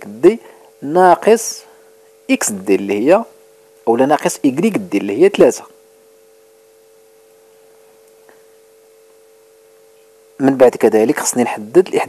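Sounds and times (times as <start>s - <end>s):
faint steady electronic tone: 0.0s - 12.0s.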